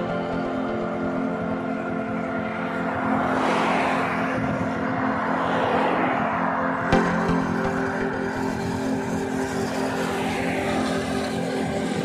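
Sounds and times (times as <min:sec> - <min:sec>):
background music: 0:00.0 - 0:12.0
car passing: 0:00.0 - 0:12.0.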